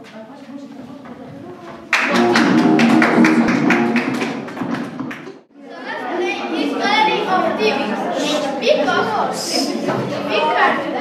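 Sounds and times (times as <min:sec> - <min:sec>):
acoustic guitar strumming chords: 0:02.0 - 0:04.6.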